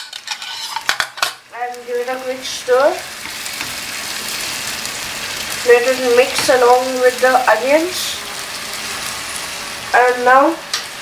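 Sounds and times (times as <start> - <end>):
vegetables sizzling in a pan: 0.0 - 11.0.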